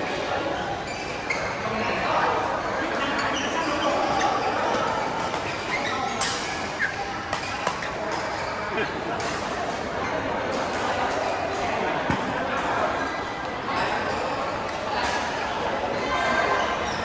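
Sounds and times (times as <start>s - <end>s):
voices in large hall: 0.0s - 17.0s.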